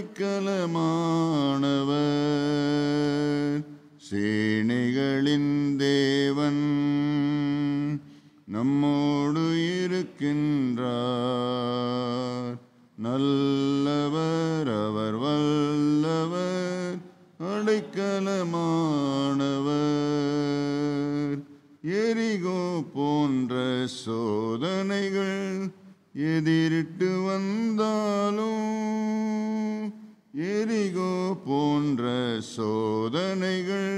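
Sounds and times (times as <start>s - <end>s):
man singing a hymn unaccompanied: 0.0s - 33.9s.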